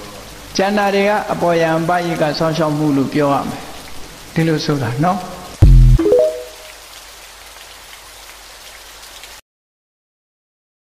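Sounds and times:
steady rain: 0.0 - 9.4.

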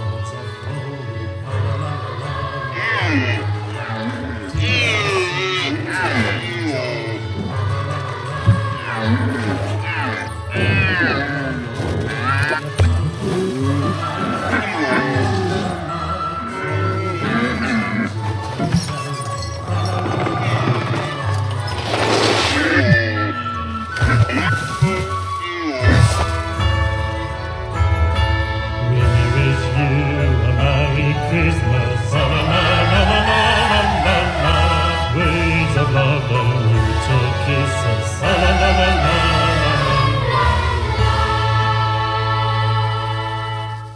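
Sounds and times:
choir singing held notes: 0.0 - 18.6, 28.5 - 43.9
background music: 0.0 - 43.9.

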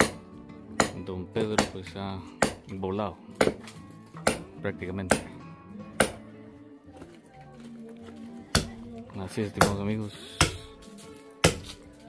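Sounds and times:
hammer striking concrete: 0.0 - 2.8, 3.4 - 5.4, 6.0 - 6.3, 8.5 - 8.9, 9.6 - 10.8, 11.4 - 11.9
background music with held notes: 0.0 - 12.0.

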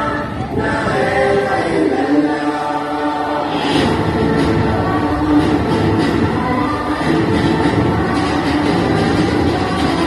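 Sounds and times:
group of voices singing: 0.0 - 10.0.

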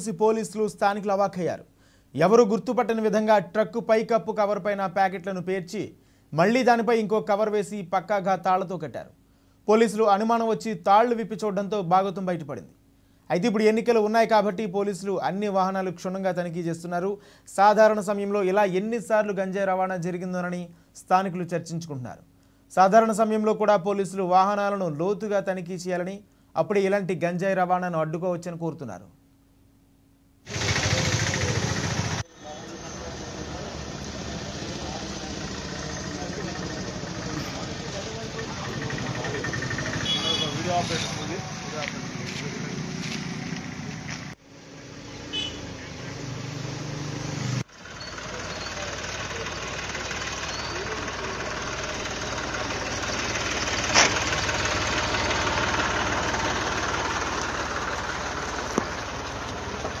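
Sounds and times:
people talking: 0.0 - 1.6, 2.2 - 9.1, 9.7 - 12.7, 13.3 - 22.2, 30.7 - 31.8, 32.4 - 43.2, 48.3 - 51.9
vehicle engine idling: 30.5 - 60.0.

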